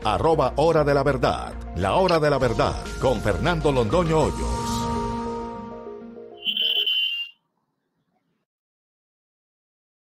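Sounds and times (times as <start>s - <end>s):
high steady jingle tone: 6.4s - 7.3s.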